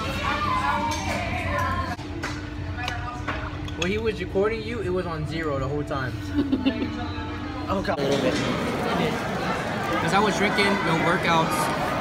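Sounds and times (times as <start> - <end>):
general murmur: 0.0 - 12.0.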